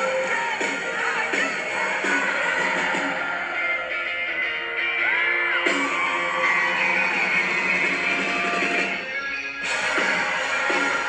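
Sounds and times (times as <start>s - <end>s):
live band playing pop-punk rock: 0.0s - 11.0s.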